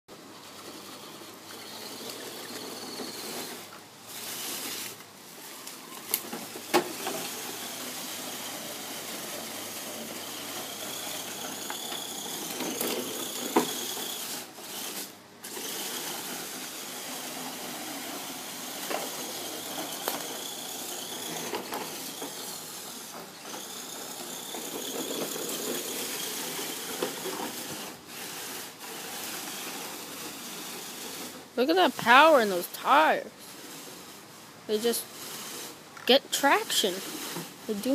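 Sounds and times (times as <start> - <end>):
toy car motor whining: 0.4 - 37.9.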